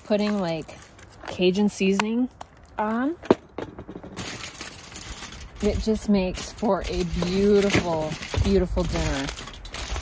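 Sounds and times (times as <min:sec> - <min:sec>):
aluminium foil crinkling: 0:00.0 - 0:03.1, 0:04.2 - 0:10.0.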